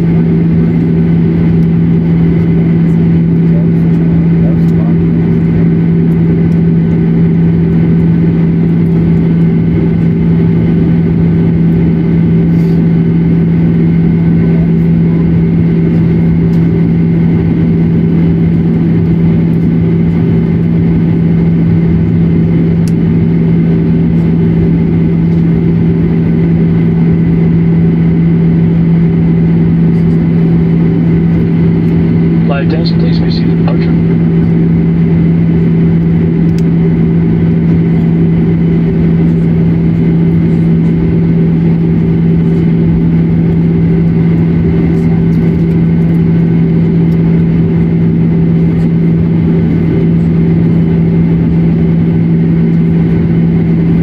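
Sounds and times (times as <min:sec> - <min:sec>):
jet engines droning in cabin: 0:00.0 - 0:54.0.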